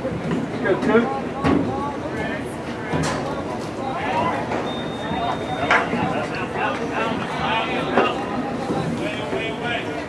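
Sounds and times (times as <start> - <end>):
voices calling out: 0.8 - 10.0.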